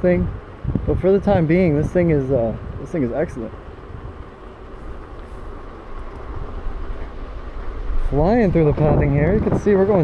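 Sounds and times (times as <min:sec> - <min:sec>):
wind on microphone: 0:00.1 - 0:10.0
scooter tyres rumbling and rattling: 0:02.6 - 0:10.0.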